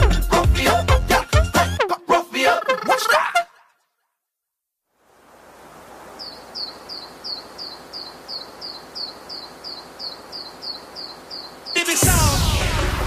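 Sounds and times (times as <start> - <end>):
faint background hiss: 4.6 - 12.0.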